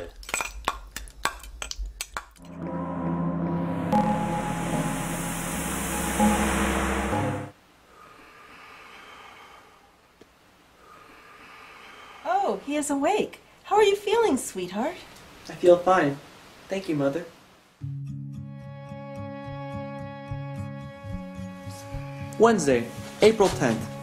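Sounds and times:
loud sustained chord with hiss: 0:02.5 - 0:07.6, 0:18.7 - 0:24.0.

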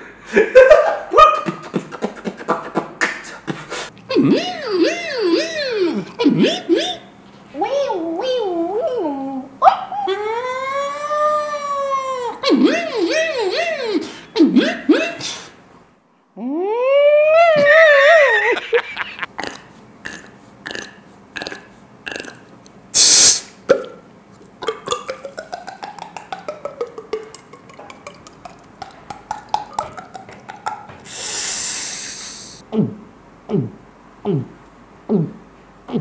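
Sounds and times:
mouth clicks and beatbox sounds: 0:01.4 - 0:07.0, 0:19.4 - 0:36.0
person imitating a siren: 0:04.1 - 0:07.0, 0:16.4 - 0:18.6
long mouth hiss: 0:22.9 - 0:23.6, 0:31.0 - 0:32.7.

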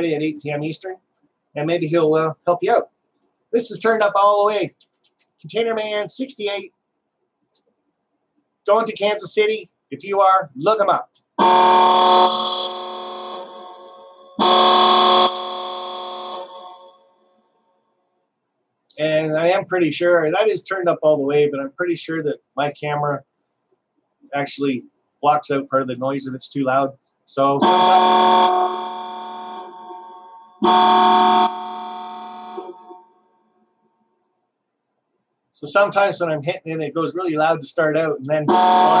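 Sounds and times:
electronic horn chord: 0:11.4 - 0:17.0, 0:27.6 - 0:33.2, 0:38.5 - 0:39.0.

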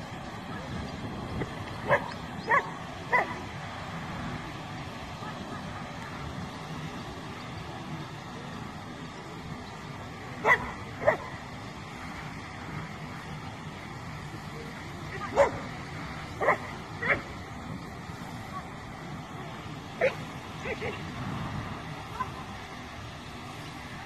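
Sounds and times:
steady background noise: 0:00.0 - 0:24.0
dog barking: 0:01.9 - 0:03.4, 0:10.4 - 0:11.3, 0:16.4 - 0:17.2.

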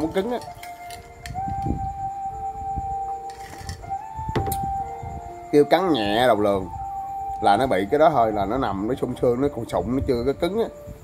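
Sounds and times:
flute-like tone in music: 0:00.0 - 0:11.0
low handling knocks: 0:04.3 - 0:04.9.

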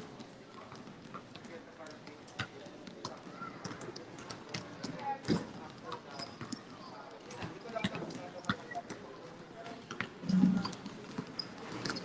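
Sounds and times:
basketballs bouncing on concrete: 0:09.9 - 0:12.0.

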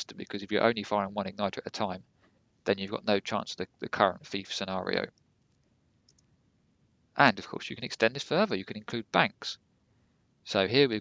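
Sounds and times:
faint short clicks: 0:05.1 - 0:06.3.

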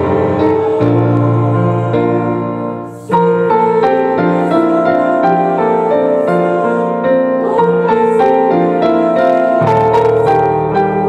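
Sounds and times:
piano accompaniment: 0:00.0 - 0:11.0
women singing a hymn: 0:00.0 - 0:11.0.

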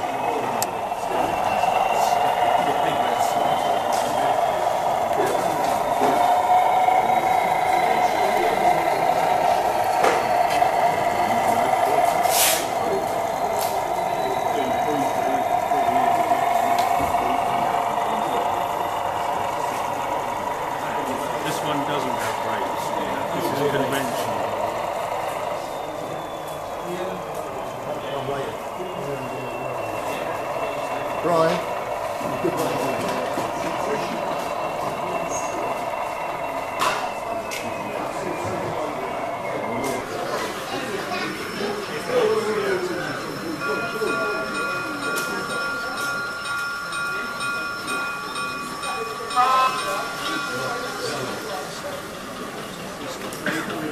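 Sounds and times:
chatter of voices: 0:00.0 - 0:53.9
model diesel locomotive engine drone: 0:00.0 - 0:53.9
steady high multi-note tone: 0:28.0 - 0:52.7.

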